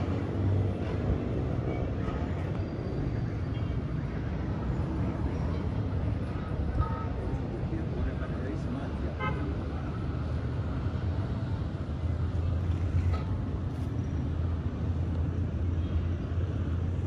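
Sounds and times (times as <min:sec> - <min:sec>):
road noise rumble: 0:00.0 - 0:17.0.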